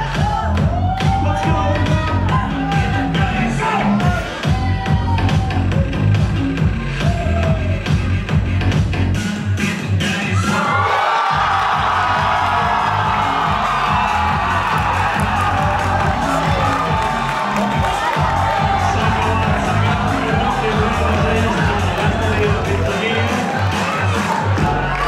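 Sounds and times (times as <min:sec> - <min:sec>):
crowd cheering and whooping: 0:00.0 - 0:06.2, 0:06.8 - 0:07.9, 0:10.2 - 0:25.0
dance music: 0:00.0 - 0:25.0.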